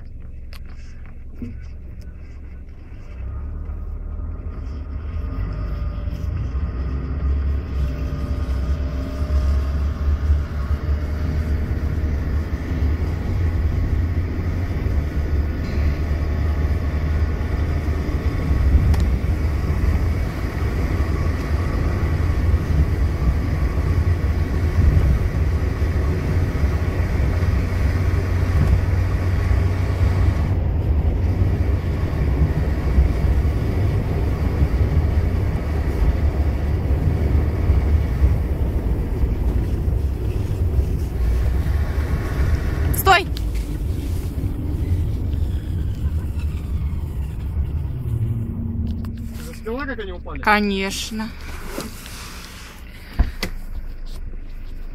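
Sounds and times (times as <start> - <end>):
car engine and road rumble: 0.0 - 54.9
faint whining tones: 37.7 - 54.9.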